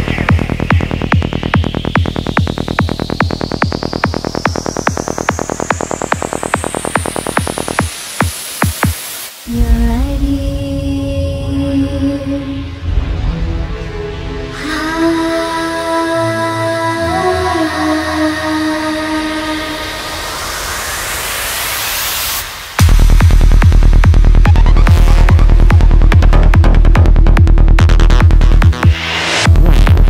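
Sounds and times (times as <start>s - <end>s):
rolling bassline: 0.0s - 8.9s, 22.8s - 30.0s
psytrance music: 0.0s - 30.0s
synth noise sweep: 0.0s - 30.0s
high rising sweep: 18.9s - 26.0s
kick drum: 22.8s - 30.0s.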